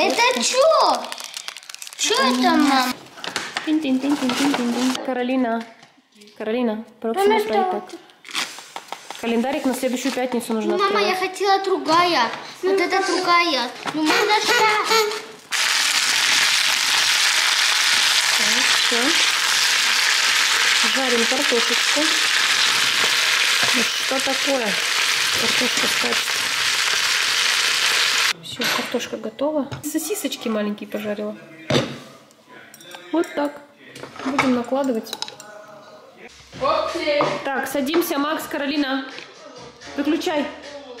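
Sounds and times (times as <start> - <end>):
potato sticks sizzling in oil: 15.5 - 28.4.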